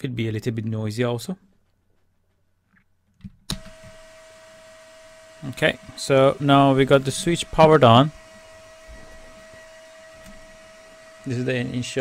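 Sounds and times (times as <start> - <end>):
cooling fans humming: 3.5 - 12.0.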